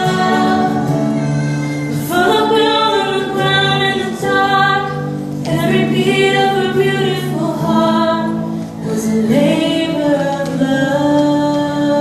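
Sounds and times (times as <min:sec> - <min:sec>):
woman singing slow song: 0:00.0 - 0:12.0.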